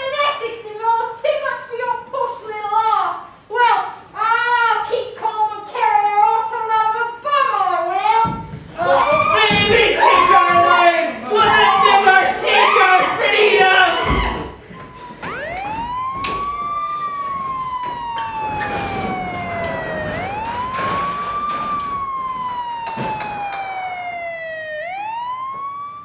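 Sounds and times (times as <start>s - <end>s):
emergency siren wailing: 11.5s - 26.0s.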